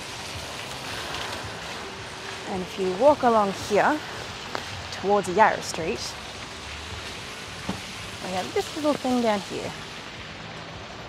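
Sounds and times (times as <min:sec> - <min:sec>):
rain on footpath: 0:00.0 - 0:11.0.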